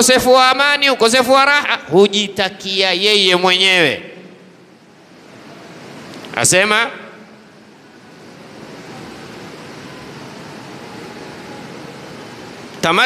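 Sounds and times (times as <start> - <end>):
room noise hiss: 0.0 - 13.0.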